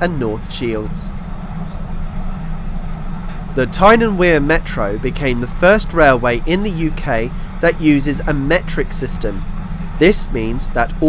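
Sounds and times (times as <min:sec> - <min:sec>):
train rumbling on track: 0:00.0 - 0:11.0.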